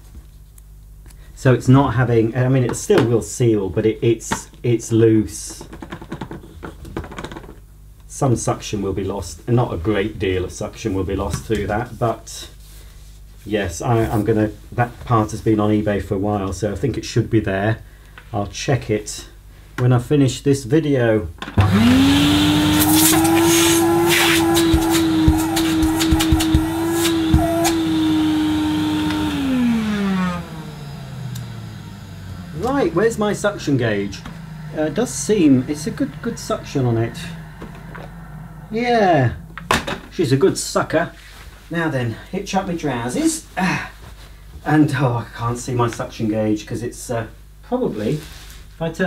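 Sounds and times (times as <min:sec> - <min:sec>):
vacuum cleaner motor whine: 0:21.6 - 0:40.4.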